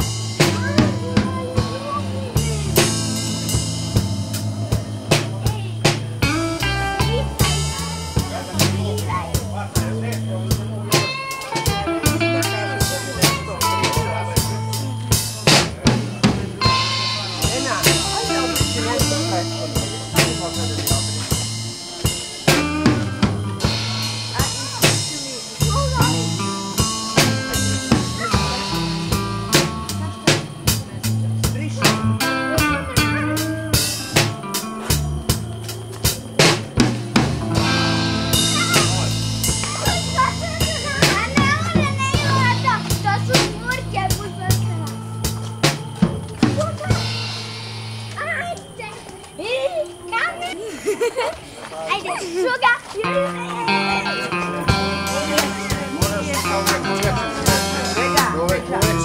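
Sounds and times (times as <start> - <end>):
young child talking: 0.0 - 3.6, 4.7 - 35.2, 37.6 - 45.4, 46.4 - 47.2, 48.1 - 59.0
electric bass line: 0.0 - 48.2, 53.1 - 59.0
electric guitar lead lines: 0.0 - 48.8, 53.0 - 59.0
drum kit beat: 0.0 - 50.5, 52.4 - 59.0.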